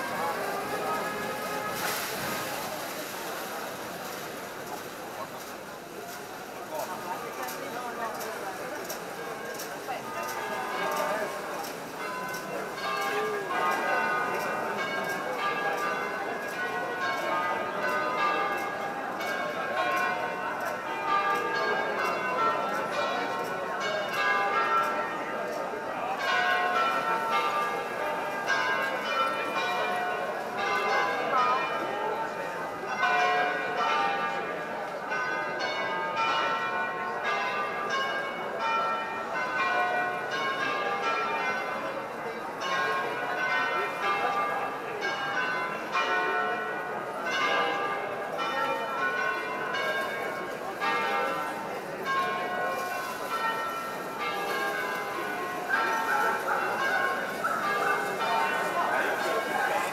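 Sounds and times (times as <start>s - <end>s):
church bells ringing a peal: 0.0s - 5.9s, 6.5s - 59.9s.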